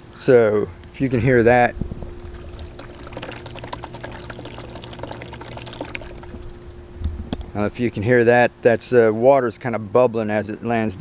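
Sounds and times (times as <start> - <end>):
faint steady hum: 0.0 - 11.0
water trickling into reservoir: 1.2 - 6.8.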